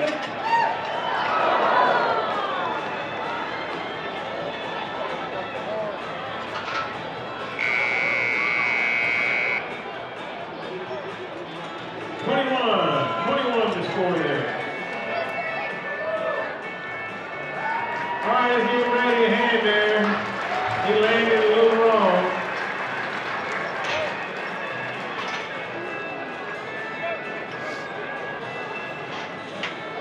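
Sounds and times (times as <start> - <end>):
crowd cheering and whooping: 0.4 - 3.9, 17.6 - 18.2
electronic buzzer: 7.6 - 9.6.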